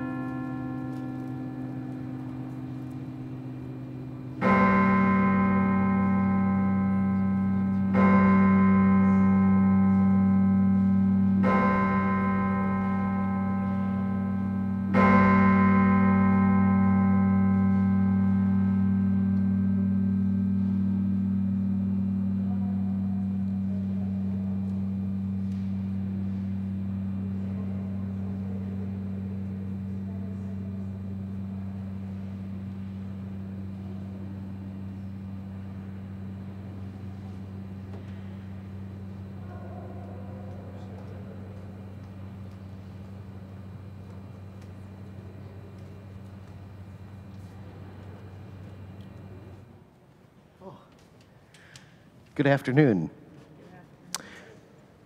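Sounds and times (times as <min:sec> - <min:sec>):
large cathedral bell ringing: 0:00.0 - 0:49.8.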